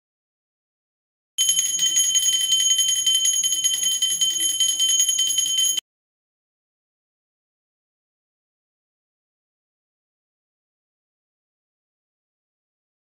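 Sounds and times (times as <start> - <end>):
hand bell ringing rapidly: 1.4 - 5.8.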